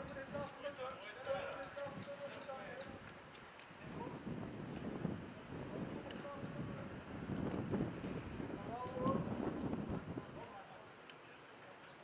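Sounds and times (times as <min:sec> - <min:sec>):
voices calling: 0:00.0 - 0:04.3
sharp clicks: 0:00.4 - 0:04.9.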